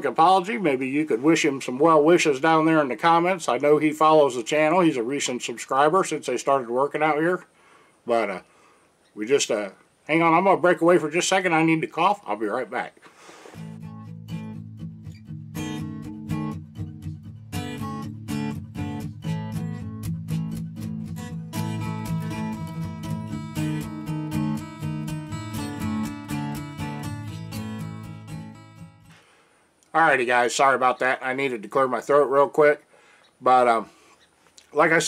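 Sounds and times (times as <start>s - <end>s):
strummed acoustic guitar: 13.5s - 29.2s.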